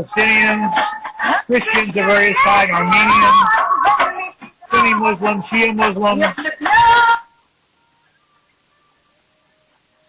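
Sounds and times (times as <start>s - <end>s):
man speaking: 0.0s - 3.6s, 4.7s - 6.4s
faint thin steady tones: 0.0s - 10.0s.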